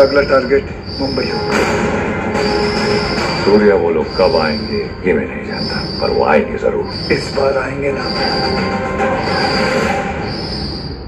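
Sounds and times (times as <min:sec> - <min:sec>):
voices: 0:00.0 - 0:10.7
dramatic music: 0:00.0 - 0:11.0
high-pitched whine: 0:00.0 - 0:11.0
sound effects: 0:00.0 - 0:11.0.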